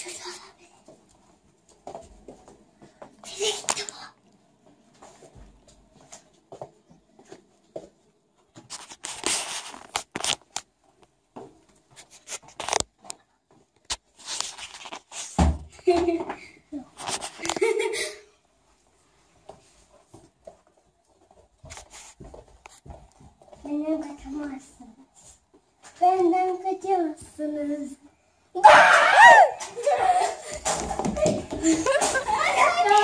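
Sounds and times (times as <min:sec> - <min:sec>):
rustling and handling noises: 0:00.2 - 0:15.4, 0:16.9 - 0:17.9, 0:18.6 - 0:26.4.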